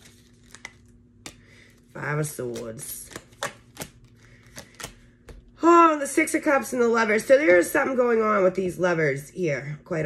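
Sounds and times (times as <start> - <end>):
cards shuffling: 0.0 - 5.5.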